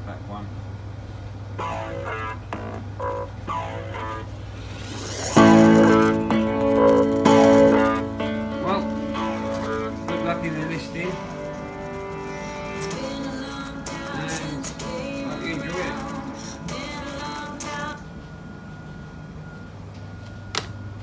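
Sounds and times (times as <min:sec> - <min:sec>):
low steady hum: 0:00.0 - 0:21.0
song with guitar and singing: 0:05.3 - 0:18.2.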